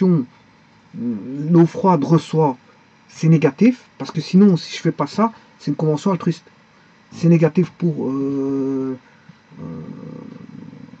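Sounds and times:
man's drawn-out hesitation sound: 0.9s - 6.4s.

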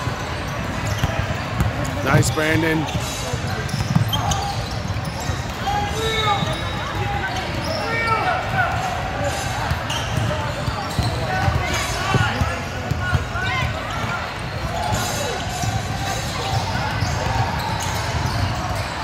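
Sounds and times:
basketball bouncing on wooden floor: 3.7s - 4.5s.

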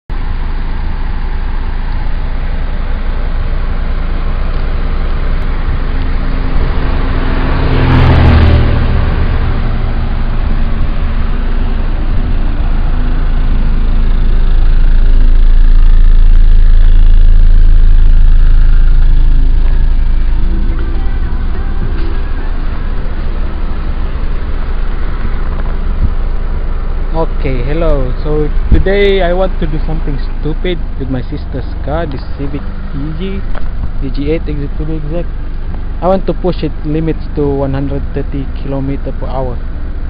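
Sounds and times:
car engine idling: 0.1s - 40.0s.

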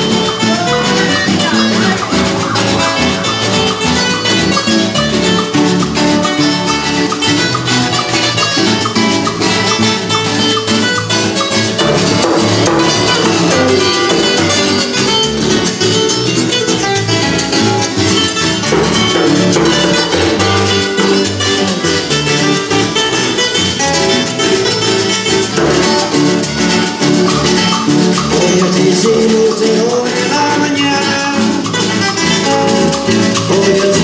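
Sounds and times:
electric bass: 0.0s - 34.0s
hand percussion: 0.0s - 34.0s
plucked banjo-like instrument: 0.0s - 34.0s
strummed acoustic guitar: 0.0s - 34.0s.

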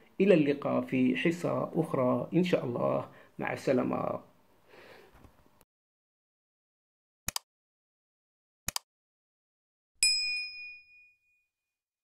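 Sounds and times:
notification bell ding: 10.0s - 11.5s.

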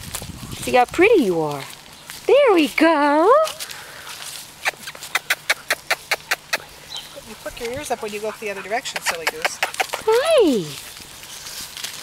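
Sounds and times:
dog panting in quick puffs: 4.7s - 10.2s.

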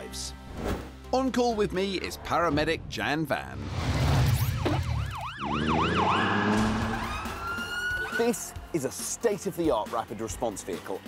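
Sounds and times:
siren yelping: 4.4s - 8.4s.

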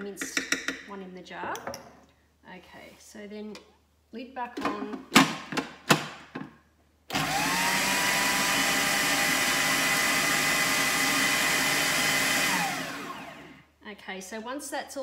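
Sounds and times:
food processor motor whining: 7.1s - 13.7s.

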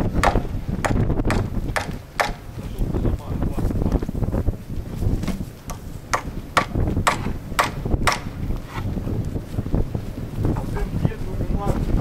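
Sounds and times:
wind rumble on microphone: 0.0s - 12.0s
hammer driving nail into wood: 0.2s - 2.5s, 5.7s - 8.8s.

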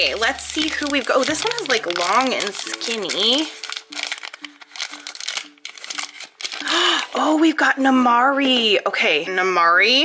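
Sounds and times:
plastic wrapper crinkling: 0.0s - 7.3s.

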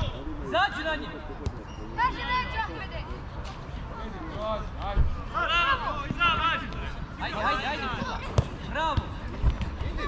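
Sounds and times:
young footballers shouting: 4.6s - 9.2s
ball kick: 8.0s - 10.0s.

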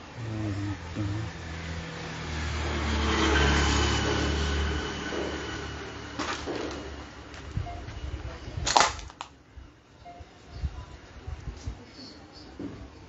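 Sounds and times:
motor vehicle passing: 0.1s - 8.2s.

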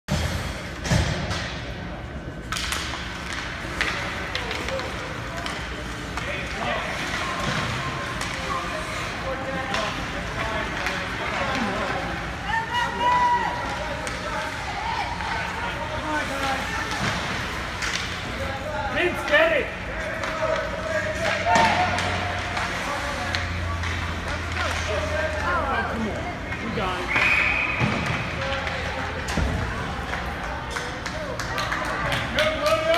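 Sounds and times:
arena noise: 0.1s - 32.9s
hockey sticks hitting puck: 0.1s - 32.9s
skating on ice: 2.2s - 32.9s.

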